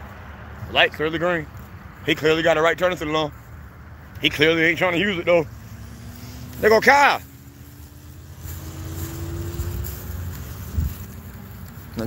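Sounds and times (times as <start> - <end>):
road traffic going by: 0.0 - 12.0
vehicle engine pulling away: 4.3 - 12.0
wind rumble on microphone: 7.4 - 12.0.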